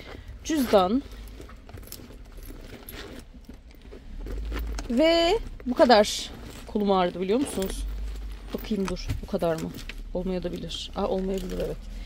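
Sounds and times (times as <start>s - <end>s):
faint rustling of handbag: 0.0s - 12.0s.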